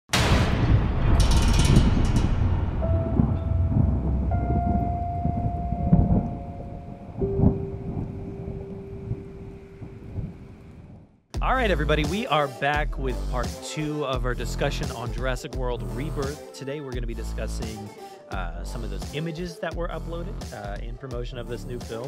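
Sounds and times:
thunderclap: 0.1 - 11.2
rolling thunder rumble: 0.1 - 11.8
long held musical tones: 2.8 - 10.9.

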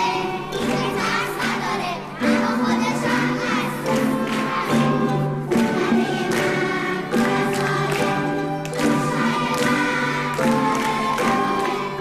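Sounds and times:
children's choir singing: 0.0 - 12.0
instrumental accompaniment: 0.0 - 12.0.

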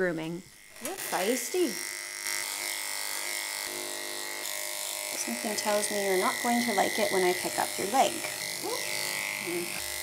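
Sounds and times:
electric clippers buzzing: 0.0 - 10.0.

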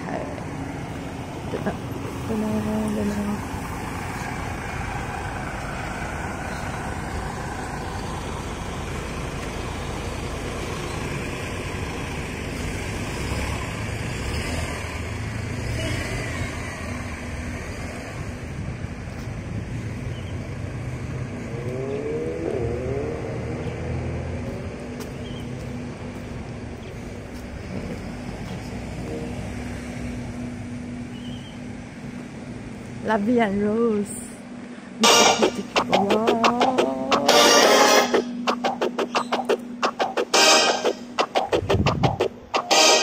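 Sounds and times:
road traffic rumbling: 0.0 - 43.0
rising and falling whine: 21.2 - 25.2, 35.0 - 43.0.

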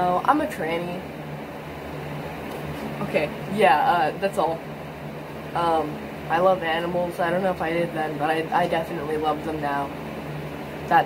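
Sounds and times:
electric fan humming: 0.0 - 11.0.

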